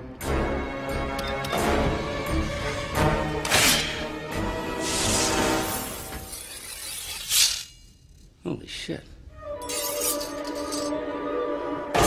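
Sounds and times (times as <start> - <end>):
music: 0.0 - 6.3, 9.2 - 12.0
metallic shing of claws: 4.8 - 8.3, 9.6 - 10.9.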